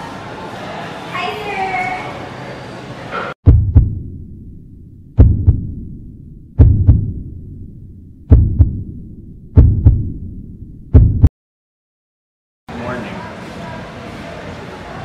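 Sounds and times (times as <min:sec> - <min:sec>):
room sound: 0:03.2 - 0:11.3
heartbeat thumps: 0:03.4 - 0:11.3.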